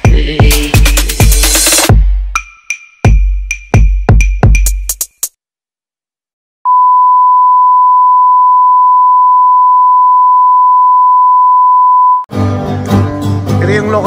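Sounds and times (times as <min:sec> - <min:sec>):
acoustic guitars string band: 0:12.3 - 0:14.0.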